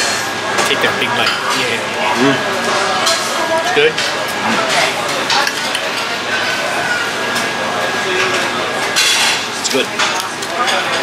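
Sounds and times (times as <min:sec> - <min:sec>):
steady dining-room hiss: 0:00.0 - 0:11.0
cutlery and dishes clinking: 0:02.7 - 0:07.5, 0:08.1 - 0:11.0.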